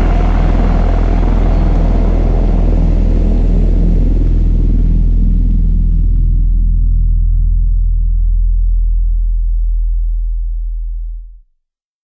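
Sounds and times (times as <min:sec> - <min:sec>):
deep electronic sub-bass note: 0:00.0 - 0:11.4.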